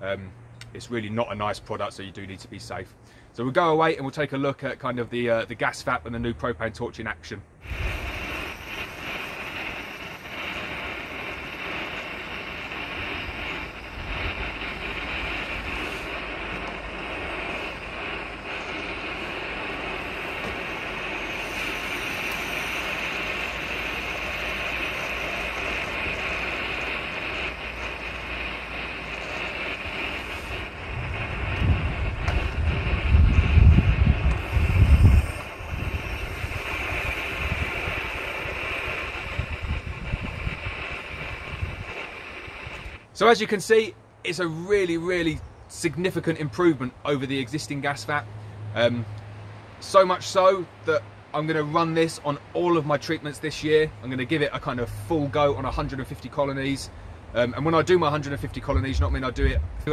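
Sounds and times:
loud low rumble: 0:07.6 - 0:42.7
propane torch burner running: 0:07.6 - 0:48.5, 0:49.1 - 0:59.9.

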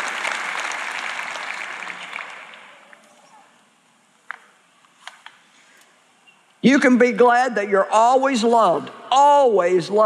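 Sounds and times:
large audience applauding: 0:00.0 - 0:03.2.

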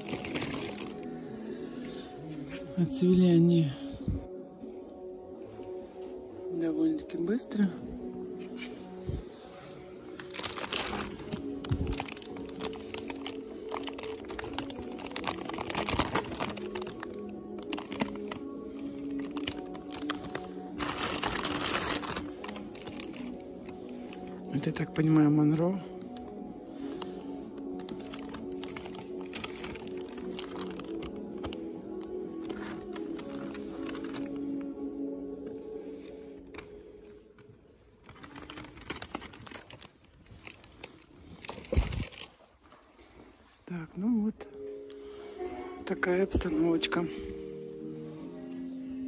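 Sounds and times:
plastic sleeves crinkling: 0:00.0 - 0:01.4, 0:08.4 - 0:43.6
background music: 0:00.0 - 0:49.0.

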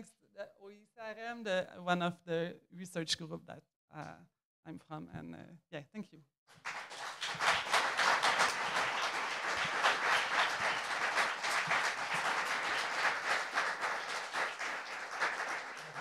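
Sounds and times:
audience applauding: 0:06.6 - 0:16.0.

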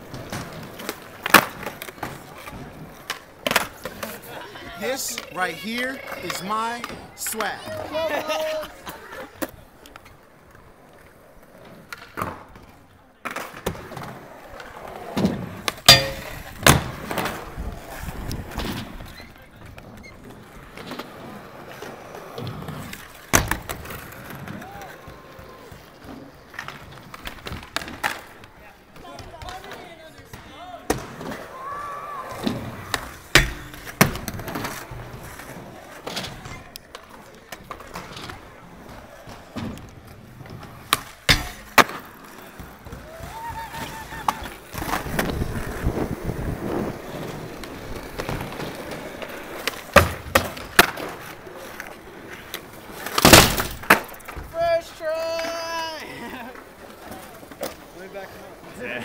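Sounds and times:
skateboard wheels rolling on concrete: 0:00.0 - 0:59.0
skateboards popping and landing: 0:00.0 - 0:59.0.

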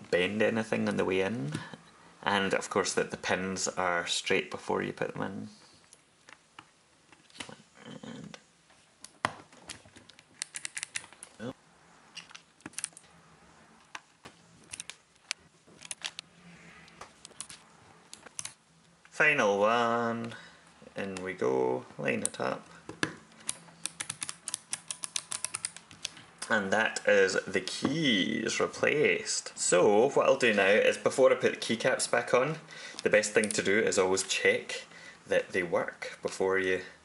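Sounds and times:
key switches clicking: 0:10.1 - 0:11.2, 0:23.4 - 0:26.2.

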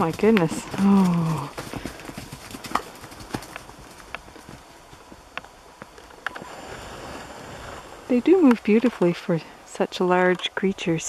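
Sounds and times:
hooves thudding on snow: 0:00.0 - 0:09.3.

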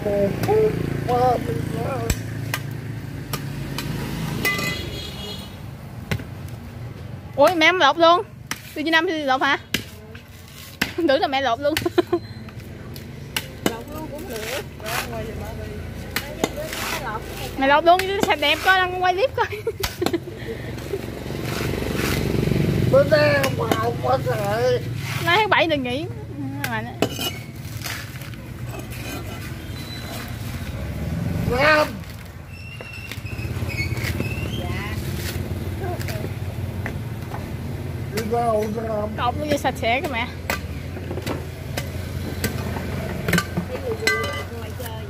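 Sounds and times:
machete chopping coconut husk: 0:00.3 - 0:00.8, 0:02.0 - 0:04.7, 0:08.4 - 0:09.0, 0:09.6 - 0:12.0, 0:12.9 - 0:19.1, 0:19.8 - 0:25.5, 0:38.0 - 0:38.8, 0:39.4 - 0:45.0.

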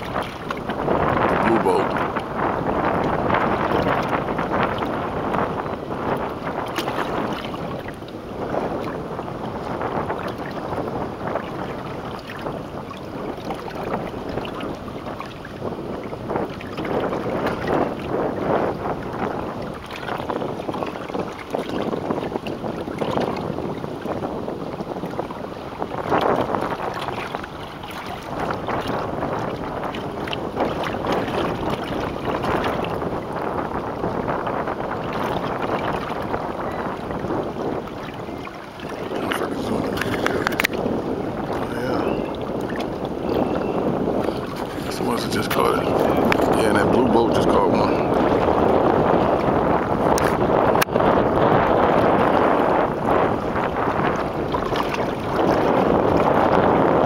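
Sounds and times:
small waves washing: 0:00.0 - 0:57.0
wind blowing over microphone: 0:00.0 - 0:57.0.

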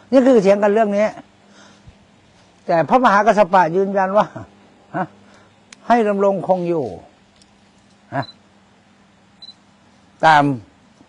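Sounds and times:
faint low hum: 0:00.0 - 0:11.0
faint high chirp: 0:08.1 - 0:08.4, 0:09.4 - 0:09.6.

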